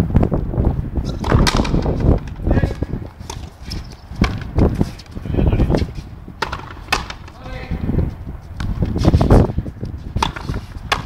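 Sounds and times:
ball rebounding off wall: 1.1 - 2.5, 4.2 - 4.7, 10.2 - 11.0
ball struck by racquets: 1.1 - 5.2, 5.8 - 7.4, 8.6 - 11.0.

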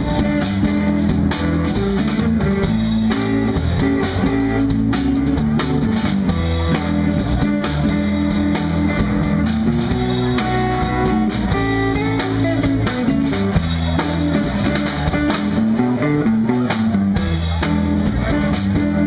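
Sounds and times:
blues band playing instrumental: 0.0 - 19.0.

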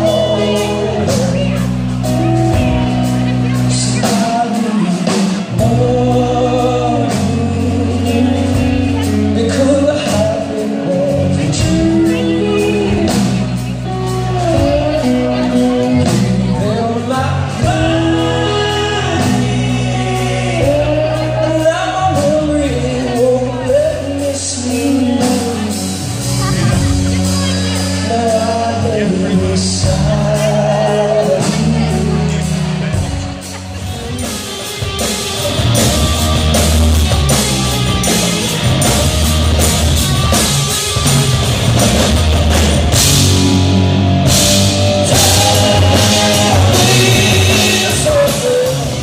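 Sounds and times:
man singing: 0.0 - 34.4, 42.6 - 49.0
drums: 0.0 - 49.0
electric bass: 0.0 - 49.0
electric guitar: 0.0 - 49.0
rock band playing live: 0.0 - 49.0.

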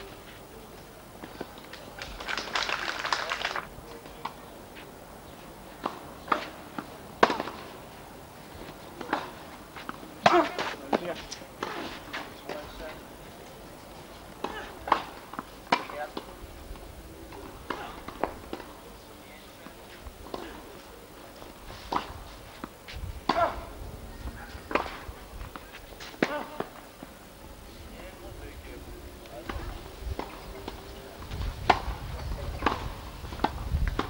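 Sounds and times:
people's voices: 0.0 - 34.0
tennis balls bouncing on court: 5.7 - 7.7, 14.3 - 16.3, 17.3 - 18.9, 19.6 - 20.8, 21.4 - 23.7, 24.7 - 27.2, 29.4 - 30.8, 31.6 - 34.0
tennis balls struck by rackets: 5.7 - 7.8, 8.5 - 13.1, 14.3 - 20.8, 21.4 - 23.8, 24.5 - 27.2, 29.4 - 31.0, 31.6 - 34.0.

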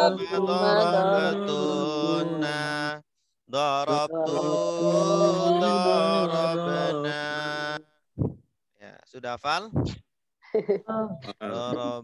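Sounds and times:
voices chanting in unison: 0.0 - 7.8.

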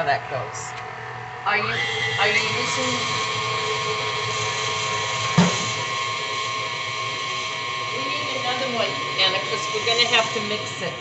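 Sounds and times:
electric mixer whining: 1.5 - 11.0
knock: 5.4 - 5.7.

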